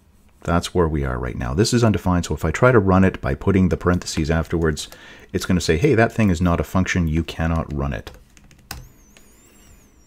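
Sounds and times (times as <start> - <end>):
computer keyboard keystrokes: 3.8 - 5.1, 7.4 - 9.0
faint high whine: 4.7 - 10.0.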